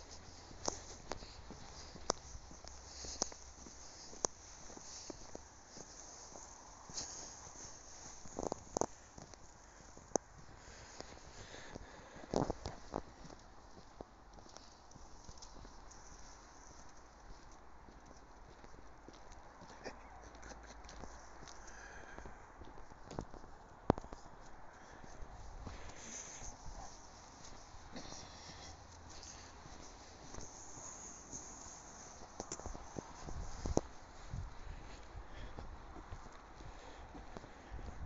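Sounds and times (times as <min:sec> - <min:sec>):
footsteps crunching in snow: 0:00.0 - 0:19.9, 0:20.9 - 0:38.0.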